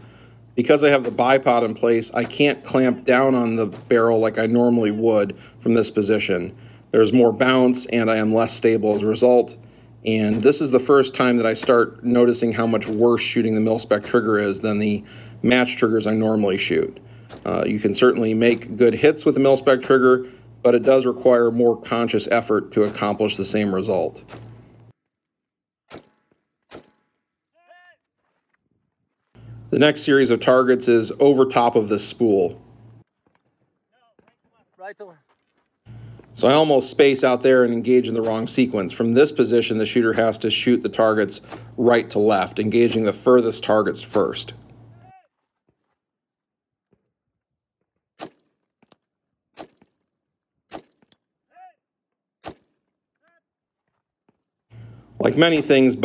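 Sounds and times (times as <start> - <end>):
faint rifle shots: 25.9 - 27.0, 48.2 - 48.6, 50.7 - 51.2.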